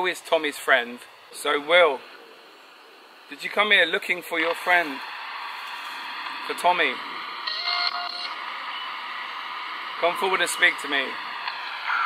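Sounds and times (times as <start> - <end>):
radio static hiss: 0.0 - 12.0
tonal radio sound: 3.3 - 5.1, 5.9 - 12.0.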